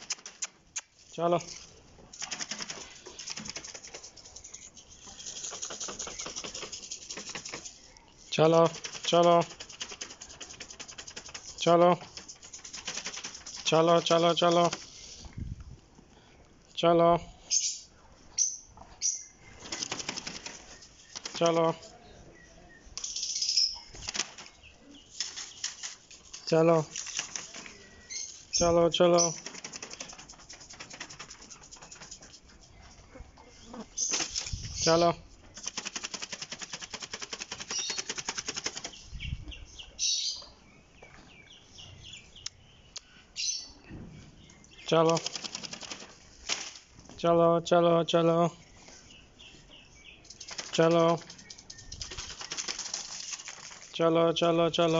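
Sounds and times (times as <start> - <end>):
chickens fluttering: 0.0 - 0.6, 2.1 - 15.1, 19.5 - 21.8, 23.8 - 33.2, 33.8 - 39.1, 44.9 - 47.0, 50.3 - 54.0
man calling sing-song: 8.3 - 9.7, 11.5 - 12.2, 13.6 - 14.9, 21.2 - 22.0, 28.5 - 29.5, 34.7 - 35.3.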